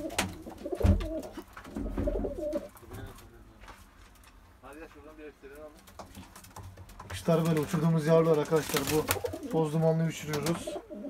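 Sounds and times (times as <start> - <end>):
pigeons cooing: 0.0 - 2.8, 8.8 - 11.0.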